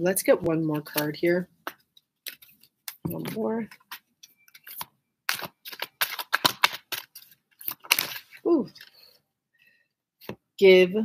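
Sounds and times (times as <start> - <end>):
cards shuffled by hand: 1.0 - 8.9.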